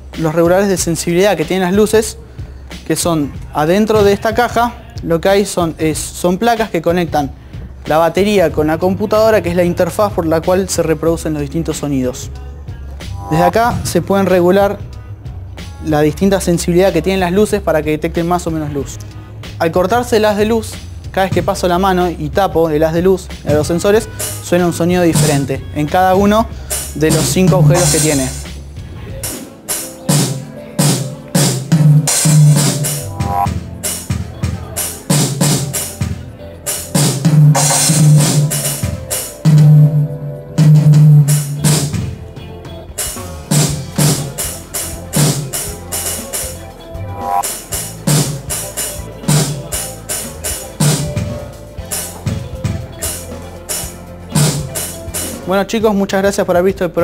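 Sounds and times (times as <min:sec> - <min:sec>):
steady low note: 0:13.1 - 0:14.3, 0:26.8 - 0:28.7, 0:30.2 - 0:33.8
sampled drum hits: 0:25.2 - 0:25.5, 0:26.8 - 0:28.6, 0:29.2 - 0:36.2, 0:37.0 - 0:42.2, 0:54.4 - 0:54.8
cymbal crashes: 0:30.1 - 0:34.1, 0:37.0 - 0:40.0.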